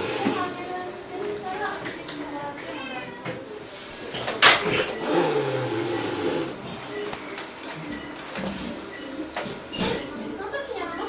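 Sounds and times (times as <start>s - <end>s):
cat hissing: 4.4s - 6.6s
cat growling low: 4.6s - 6.6s.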